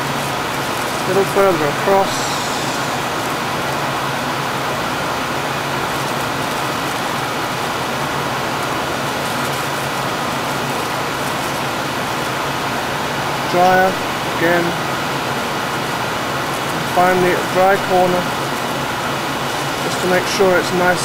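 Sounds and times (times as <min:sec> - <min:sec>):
loud steady hiss: 0:00.0 - 0:21.0.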